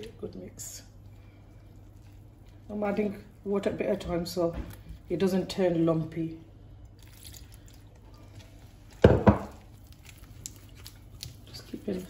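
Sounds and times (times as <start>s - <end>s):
wet batter being worked: 0.0s - 12.0s.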